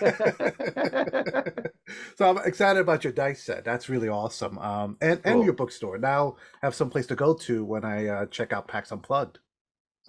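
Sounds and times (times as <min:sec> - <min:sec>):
men laughing heartily: 0:00.0 - 0:02.2.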